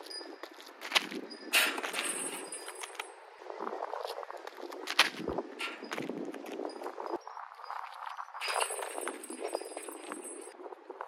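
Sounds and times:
sneaker footsteps on asphalt: 0.0s - 3.1s, 3.9s - 6.9s.

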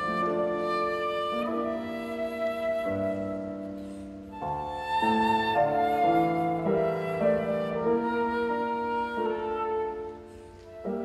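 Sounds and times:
flute: 0.0s - 11.0s
piano: 0.0s - 11.0s.

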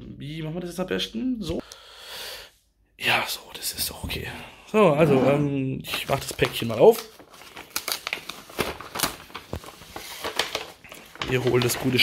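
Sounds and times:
paper bag tearing: 6.0s - 12.0s.

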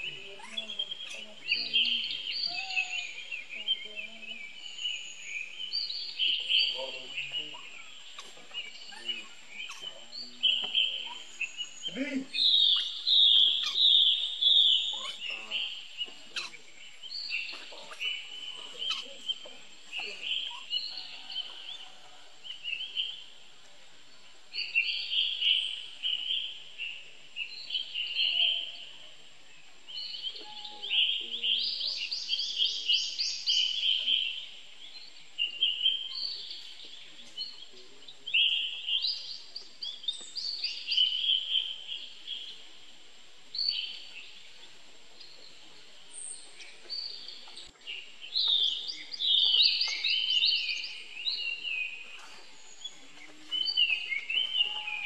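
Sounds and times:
birds chirping and trilling: 0.0s - 55.0s.

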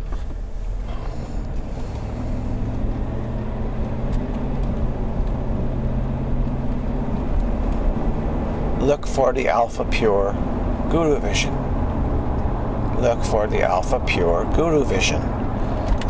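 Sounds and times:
constant rumble: 0.0s - 16.0s
low motor hum: 0.0s - 16.0s.

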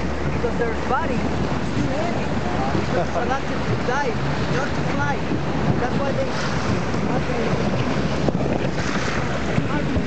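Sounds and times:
boat motor running: 0.0s - 10.0s
water rushing: 0.0s - 10.0s
wind buffeting microphone: 0.0s - 10.0s.

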